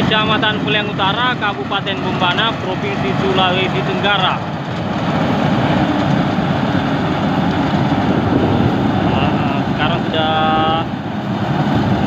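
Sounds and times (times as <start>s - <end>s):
combine harvester running: 0.0s - 12.0s.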